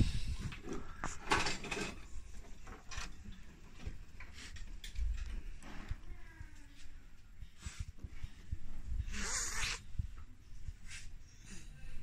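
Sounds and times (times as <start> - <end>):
rustling and clicks of plastic parts: 0.4 - 6.1.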